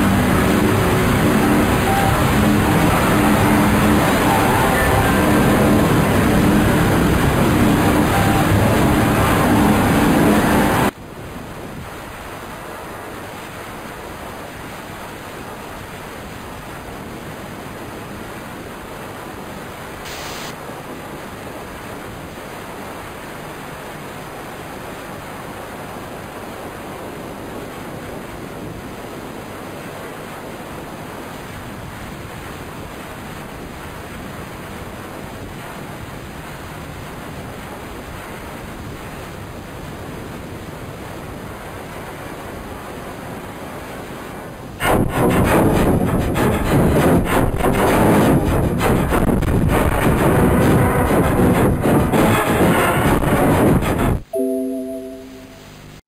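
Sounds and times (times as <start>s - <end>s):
loud droning tones: 0.0s - 10.9s, 44.8s - 55.8s
steady hiss of noise: 0.0s - 56.0s.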